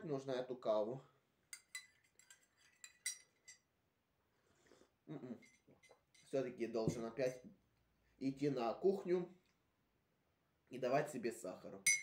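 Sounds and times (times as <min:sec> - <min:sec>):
teaspoon clinking against mug: 0:01.6 - 0:03.6.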